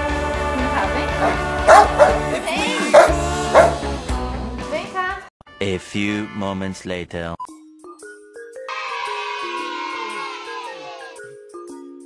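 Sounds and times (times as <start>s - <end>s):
background pop music: 0.0s - 5.2s
big dog barking: 1.2s - 2.3s, 2.9s - 3.8s.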